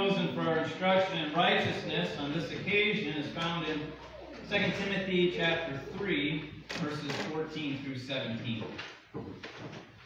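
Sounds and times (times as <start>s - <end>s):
person speaking: 0.0s - 8.9s.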